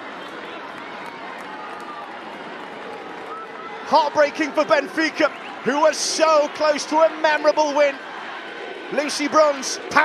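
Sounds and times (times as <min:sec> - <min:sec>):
steady background noise: 0:00.0 - 0:10.0
distant shouting voices: 0:03.2 - 0:10.0.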